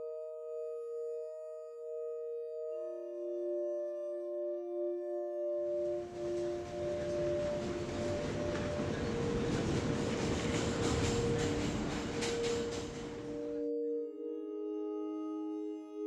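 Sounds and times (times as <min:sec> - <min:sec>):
soft ambient music: 0:00.0 - 0:16.0
wheels clattering on rails: 0:05.8 - 0:13.6
subway train rumbling past: 0:05.8 - 0:13.7.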